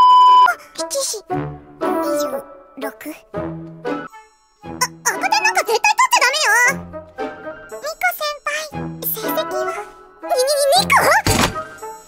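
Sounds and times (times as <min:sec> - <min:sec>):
light background music: 0:00.5 - 0:12.0
girl speaking in shaky voice: 0:00.7 - 0:01.3, 0:01.9 - 0:03.2, 0:04.8 - 0:06.8, 0:07.8 - 0:11.3.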